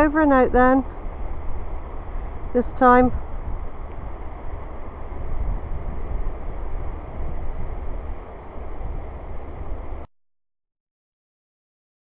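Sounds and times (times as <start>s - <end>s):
wind on microphone: 0.0s - 10.1s.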